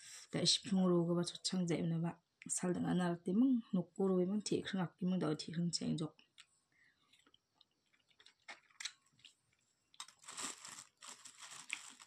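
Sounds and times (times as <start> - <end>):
chewing crunchy fruit: 7.1 - 10.5
crinkly rustling: 10.0 - 12.0.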